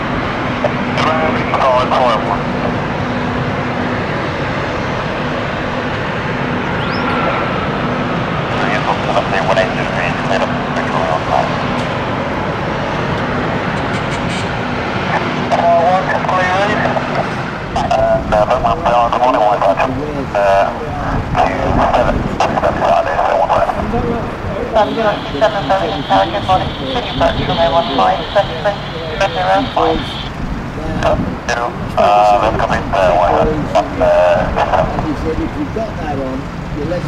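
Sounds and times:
engine roar: 0.0 - 37.0
people chatting: 0.6 - 2.8, 8.5 - 11.7, 15.1 - 37.0.

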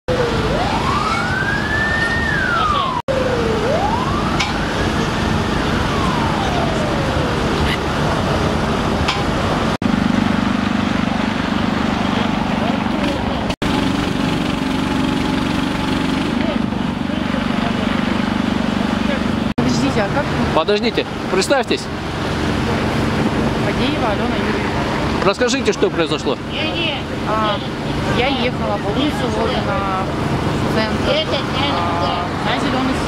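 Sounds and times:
emergency siren wailing: 0.1 - 12.9
street noise: 0.1 - 33.0.

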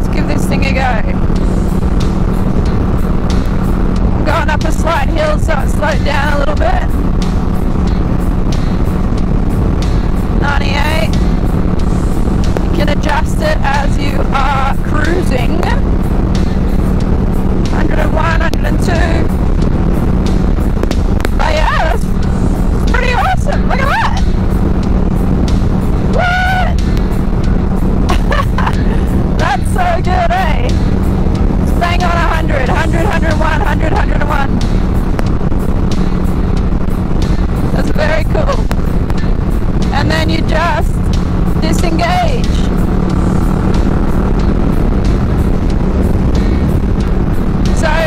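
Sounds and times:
motorcycle engine hum: 0.0 - 48.0
music with a voice: 0.0 - 48.0
wind rushing: 0.0 - 48.0.

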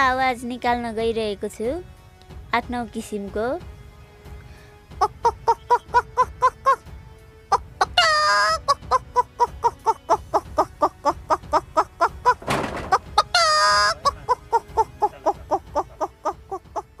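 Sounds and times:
woman imitating chicken clucks: 5.0 - 6.8, 7.6 - 12.4, 13.2 - 17.0
woman squawking: 5.0 - 6.8, 7.6 - 12.4, 13.2 - 17.0.

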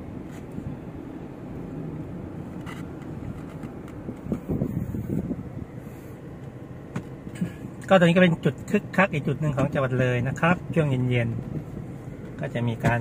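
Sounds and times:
car cabin road and engine rumble: 0.0 - 13.0.

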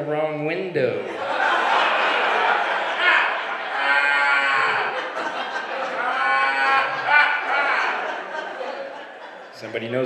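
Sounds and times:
crowd noise: 0.0 - 10.0
person calling out in crowd: 3.8 - 5.0.

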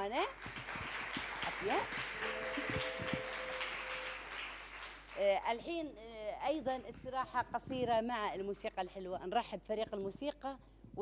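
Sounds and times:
children clapping: 0.0 - 5.4
held two-note musical chord: 2.2 - 4.2.

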